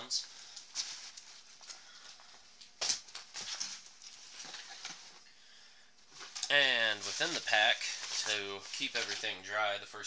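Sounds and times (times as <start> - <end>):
nylon backpack rustling: 6.1 - 9.4.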